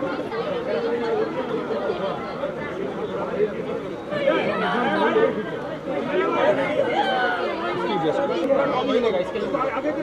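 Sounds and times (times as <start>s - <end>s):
men talking over one another: 0.0s - 10.0s.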